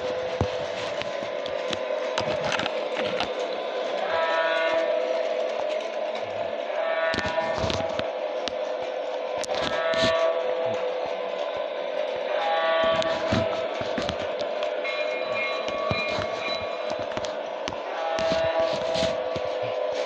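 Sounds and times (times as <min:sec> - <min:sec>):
toy train horn: 0:00.0 - 0:20.0
toy train motor humming: 0:00.0 - 0:20.0
toy train wheels clicking on track: 0:00.0 - 0:20.0.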